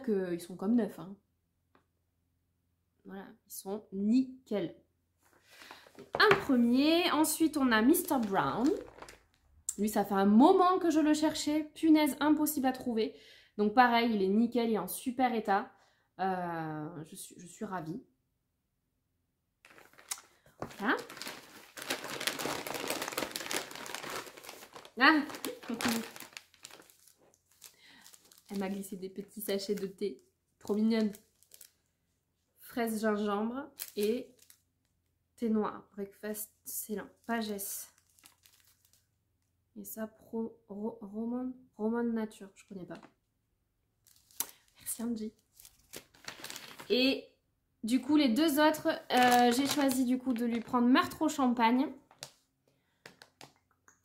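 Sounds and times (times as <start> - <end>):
packaging crinkling and rustling: 5.4 - 6.4, 7.8 - 9.5, 19.6 - 31.9, 33.8 - 34.6, 37.4 - 39.1, 44.0 - 47.0, 49.0 - 51.2, 52.1 - 52.4
paperback books clicking and tapping: 52.1 - 52.4, 53.0 - 53.6.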